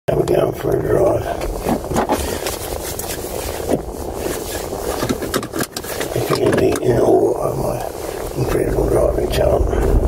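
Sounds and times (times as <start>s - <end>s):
car running heard from cabin: 0.1s - 10.0s.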